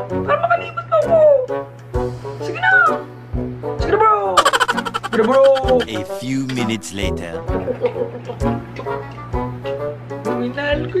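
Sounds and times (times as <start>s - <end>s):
woman whiny vocalizing: 4.4s - 5.9s
background music: 4.4s - 8.8s.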